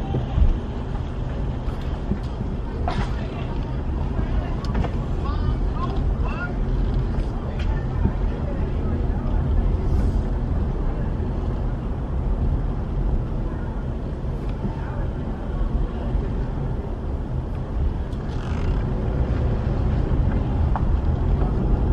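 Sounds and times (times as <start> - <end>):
car driving slowly: 0.0 - 21.9.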